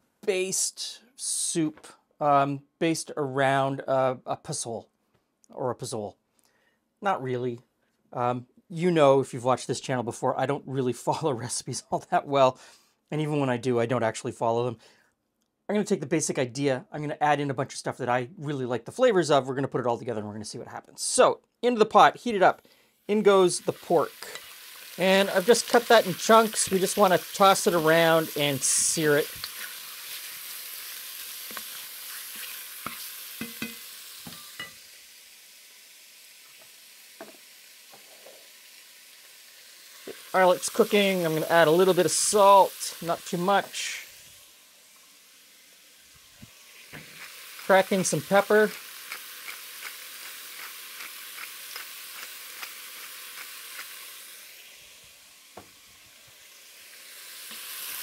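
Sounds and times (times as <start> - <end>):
pork sizzling in hot oil: 23.0 - 58.0
oil popping: 24.2 - 34.8, 46.1 - 54.7
pepper mill clicks: 48.7 - 54.0.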